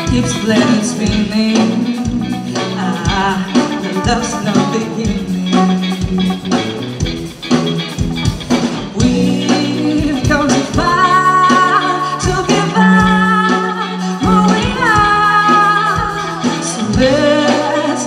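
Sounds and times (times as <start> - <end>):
woman singing: 0.0 - 6.1, 8.9 - 18.0
bass guitar: 0.0 - 18.0
drums: 0.0 - 18.0
electric guitar: 0.0 - 18.0.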